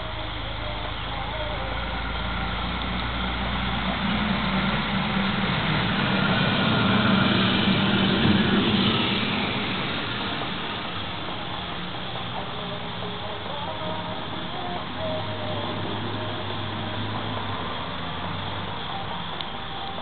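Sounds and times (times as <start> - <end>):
passing vehicle engine: 0.0 - 20.0.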